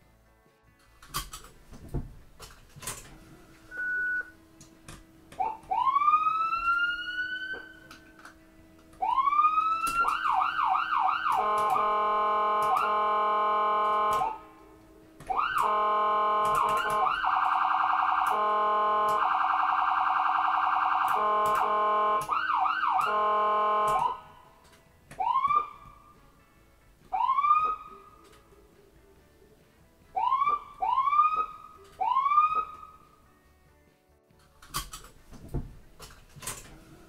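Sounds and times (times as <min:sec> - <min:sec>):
ambulance siren: 0:02.9 - 0:04.5, 0:05.3 - 0:24.5, 0:25.2 - 0:26.2, 0:27.1 - 0:28.3, 0:30.2 - 0:33.2.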